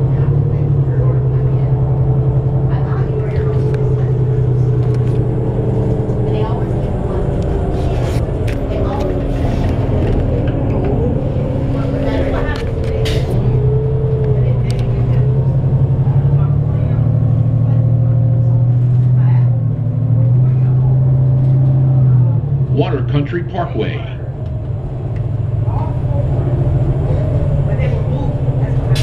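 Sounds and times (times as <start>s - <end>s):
bus diesel engine drone: 0.0s - 29.0s.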